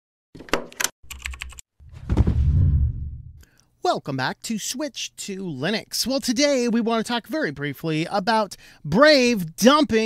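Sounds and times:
computer keyboard typing clicks: 0.7s - 1.6s
deep low thud: 1.9s - 3.4s.

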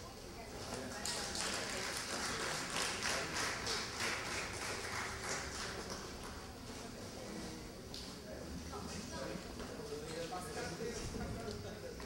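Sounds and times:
light applause: 0.9s - 6.5s.

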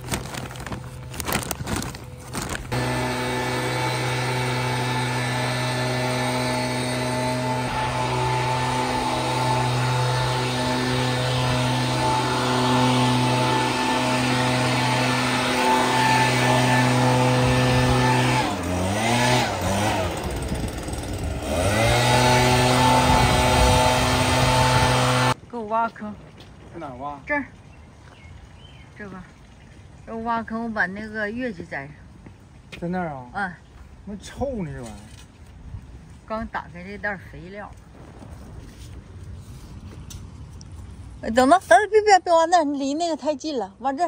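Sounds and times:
leaf blower engine running: 0.0s - 25.4s.

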